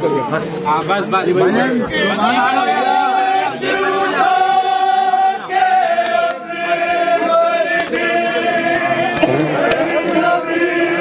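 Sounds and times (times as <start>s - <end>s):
men chanting a lament: 1.0s - 11.0s.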